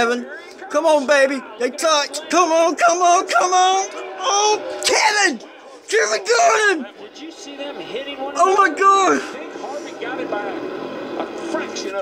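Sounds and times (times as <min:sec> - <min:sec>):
excited voices on television: 0:00.0 - 0:12.0
race car engine drone: 0:00.4 - 0:05.9, 0:06.9 - 0:12.0.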